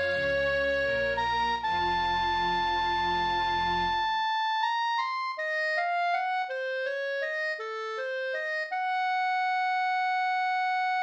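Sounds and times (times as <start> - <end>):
clarinet playing: 0.0 - 11.0.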